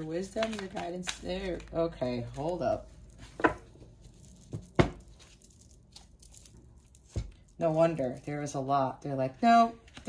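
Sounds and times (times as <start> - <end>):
cards rustling: 0.0 - 8.6.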